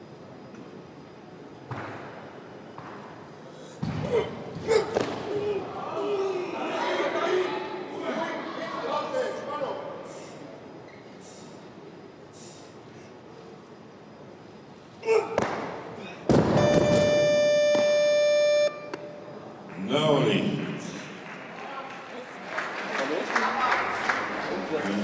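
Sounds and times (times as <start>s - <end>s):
crowd voices in a hall: 0.0s - 25.0s
electronic buzzer: 16.4s - 19.2s.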